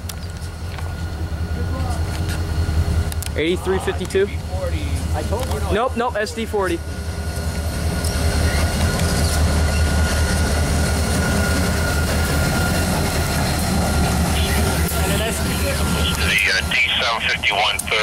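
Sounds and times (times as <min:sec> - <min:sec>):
diesel locomotive engine rumble: 0:00.0 - 0:18.0.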